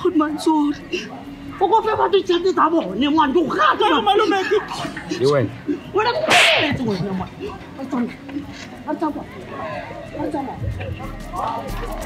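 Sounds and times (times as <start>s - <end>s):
people shouting in a scuffle: 5.9s - 7.2s, 8.9s - 12.0s.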